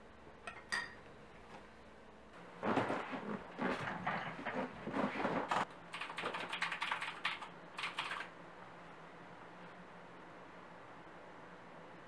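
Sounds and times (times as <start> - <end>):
rustling in desk chair: 2.6 - 5.7
typing on computer keyboard: 5.9 - 8.3.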